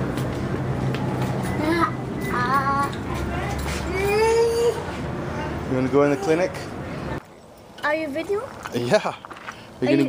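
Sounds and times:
toddler vocalising sing-song: 3.8 - 4.9.

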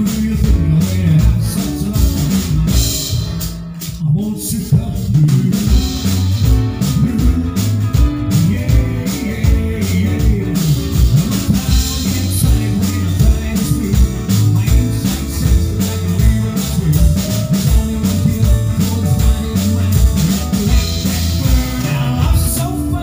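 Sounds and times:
bass guitar: 0.0 - 23.0
drum kit beat: 0.0 - 23.0
electric guitar: 4.8 - 23.0.

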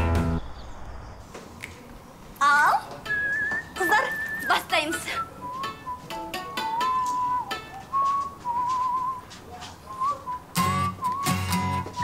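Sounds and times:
long wavering whistle: 3.1 - 9.3
woman speaking: 3.8 - 5.2.

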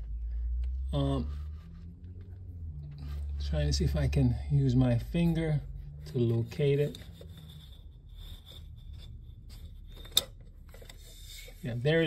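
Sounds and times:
rubbing and scraping handling noise: 1.1 - 12.0.

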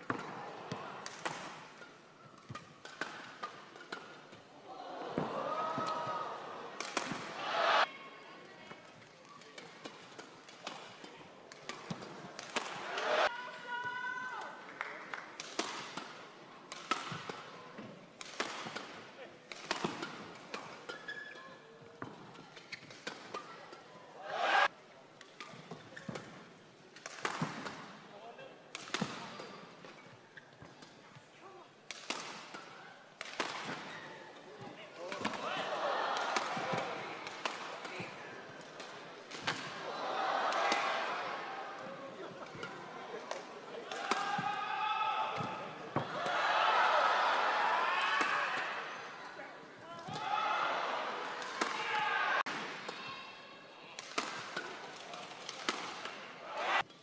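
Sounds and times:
rackets striking shuttlecock: 0.0 - 4.3, 6.7 - 7.4, 9.6 - 13.1, 15.4 - 21.3, 22.0 - 23.8, 27.0 - 27.9, 31.8 - 34.0, 36.2 - 39.8, 41.8 - 44.5, 54.0 - 56.2
crowd noise: 0.0 - 20.8, 21.8 - 30.0, 31.2 - 57.0.

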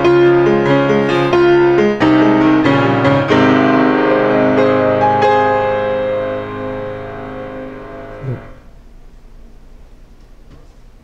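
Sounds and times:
keyboard music holding a chord: 0.0 - 8.7
downward pitch slide: 0.7 - 8.7.

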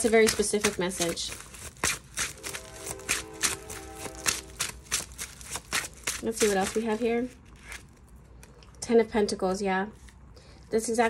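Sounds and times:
playing cards shuffling: 0.0 - 8.1.

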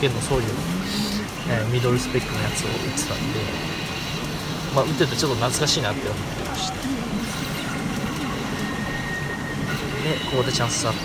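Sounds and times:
machines clattering and beeping: 0.0 - 11.0.

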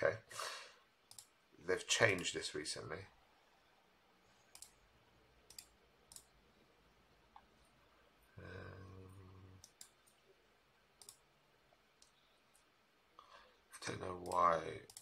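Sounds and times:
computer mouse clicking: 1.1 - 1.3, 4.5 - 4.8, 5.5 - 6.3, 9.6 - 10.2, 11.0 - 11.2, 14.2 - 15.0.

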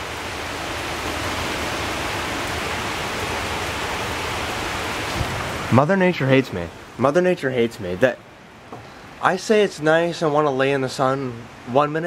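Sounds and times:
heavy rain on wooden deck: 0.0 - 12.0.

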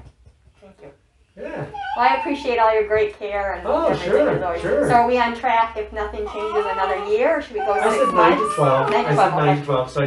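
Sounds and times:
dog whining: 1.6 - 2.7, 6.2 - 9.6.

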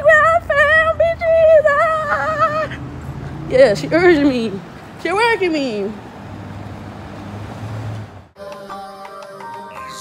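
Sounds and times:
vehicle engine hum: 0.0 - 8.4
city street traffic: 0.0 - 8.5.

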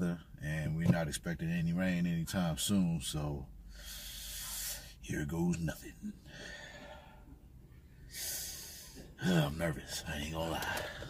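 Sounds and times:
man exhaling hard through nose: 8.1 - 9.1.

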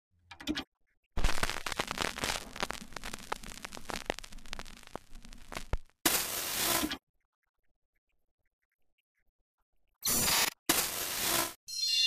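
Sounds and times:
pops and crackles: 1.2 - 7.0.

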